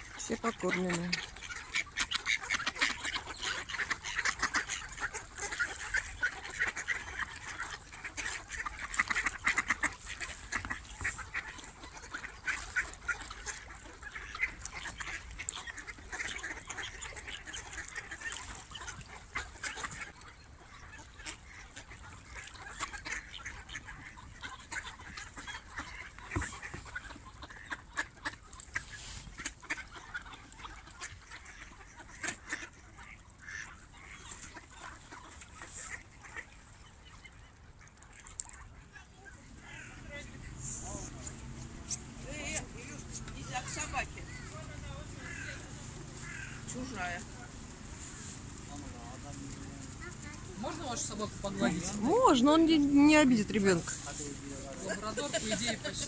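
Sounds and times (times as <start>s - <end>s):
ducks quacking: 0.0s - 56.0s.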